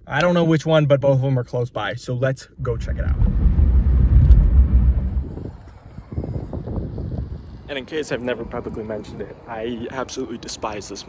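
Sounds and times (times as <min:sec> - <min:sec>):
car road rumble from inside cabin: 0:02.6 - 0:05.8.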